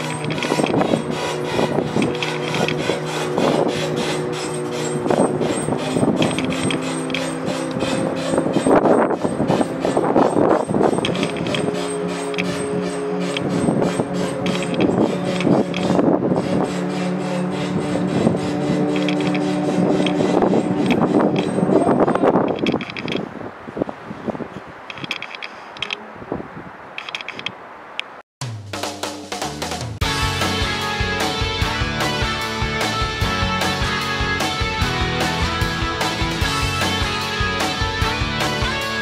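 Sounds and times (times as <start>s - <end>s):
winch cranking and clattering: 0.0s - 23.2s.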